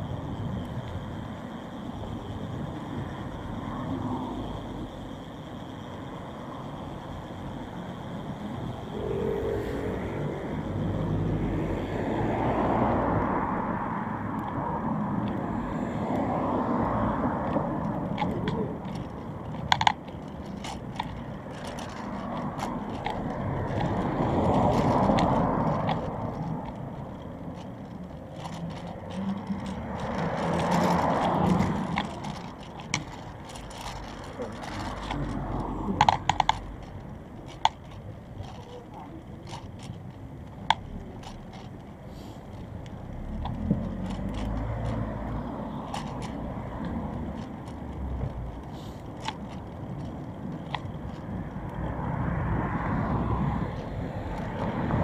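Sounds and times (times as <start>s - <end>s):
vehicles passing: 0.0s - 55.0s.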